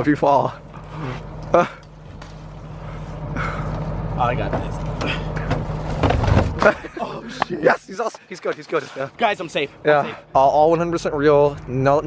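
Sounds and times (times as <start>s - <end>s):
low mechanical hum: 0.0s - 8.0s.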